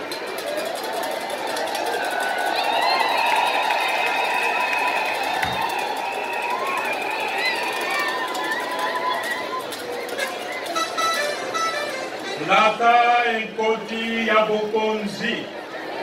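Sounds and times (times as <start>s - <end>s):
crowd cheering: 0.0s - 16.0s.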